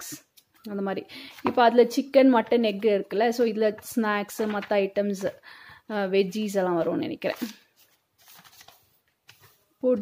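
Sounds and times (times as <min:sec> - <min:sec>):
person speaking: 0:00.0 - 0:07.7
notebook pages turning: 0:04.4 - 0:04.9, 0:07.2 - 0:09.7.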